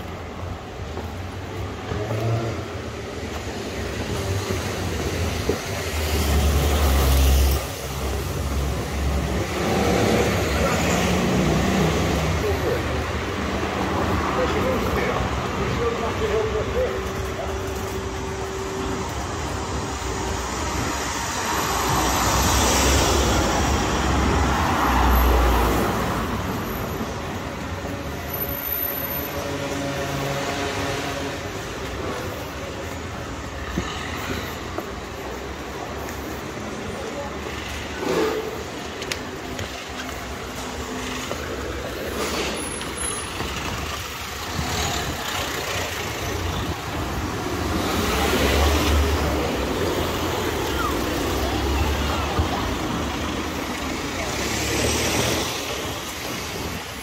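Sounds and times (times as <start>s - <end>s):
cars passing: 0.0s - 57.0s
town background hum: 0.0s - 57.0s.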